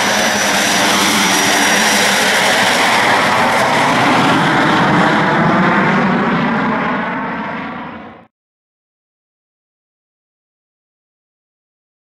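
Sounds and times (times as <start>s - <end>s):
jet engine roar: 0.0s - 8.3s.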